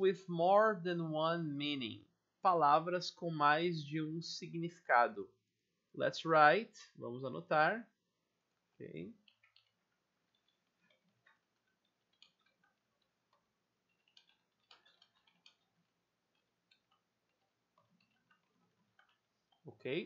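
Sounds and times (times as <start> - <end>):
computer keyboard typing: 9.2 - 19.7.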